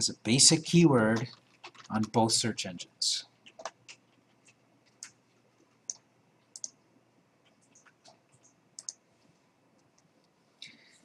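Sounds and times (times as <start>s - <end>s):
computer mouse clicks: 1.1s - 2.2s, 3.4s - 6.8s, 7.4s - 9.0s.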